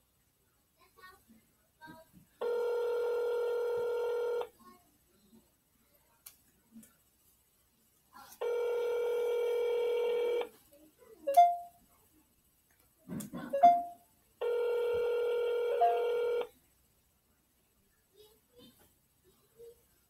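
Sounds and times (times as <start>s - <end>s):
telephone ringback tone: 2.4s - 4.5s, 8.4s - 10.5s, 11.3s - 11.8s, 13.6s - 16.5s.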